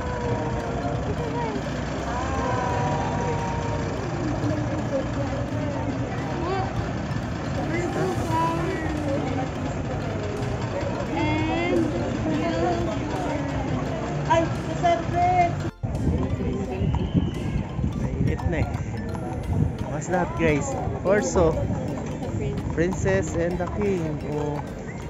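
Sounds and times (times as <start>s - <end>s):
bus engine running: 0.0s - 25.0s
people's voices: 0.0s - 25.0s.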